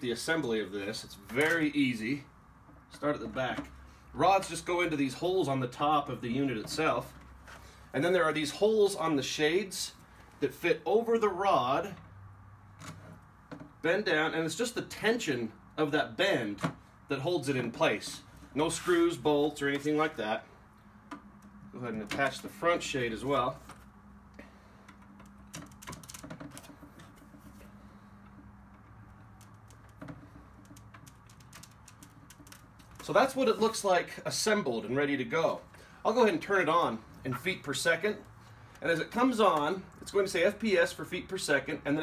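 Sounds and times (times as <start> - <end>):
man talking: 0.0 - 2.3, 2.9 - 7.2, 13.8 - 20.5, 21.8 - 23.6, 33.0 - 42.0
low steady hum: 0.0 - 42.0
small clicks and taps: 28.2 - 33.0.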